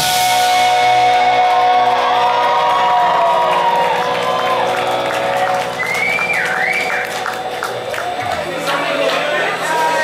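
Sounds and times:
crowd cheering: 0:00.0 - 0:10.0
live rock band: 0:00.0 - 0:10.0.

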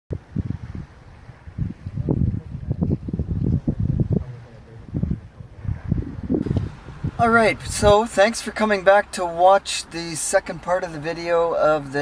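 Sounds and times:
wind buffeting microphone: 0:00.1 - 0:09.6.

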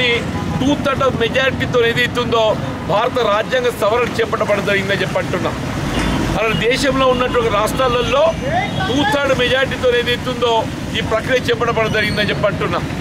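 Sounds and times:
man speaking loudly: 0:00.0 - 0:05.6, 0:06.4 - 0:12.9
street traffic rumble: 0:00.0 - 0:13.0.

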